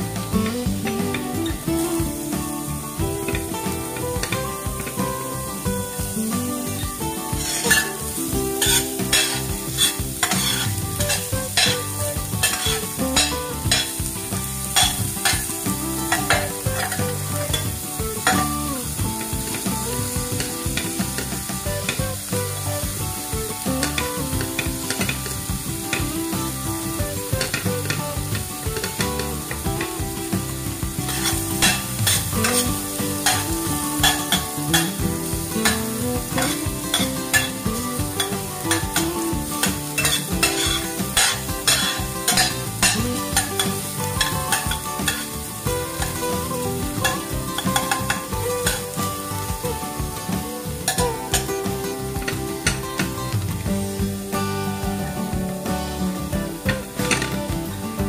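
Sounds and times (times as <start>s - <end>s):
vegetables sizzling in hot oil: 0.0s - 58.0s
spatula scraping a pan: 7.4s - 14.0s, 31.1s - 35.0s, 39.6s - 45.3s.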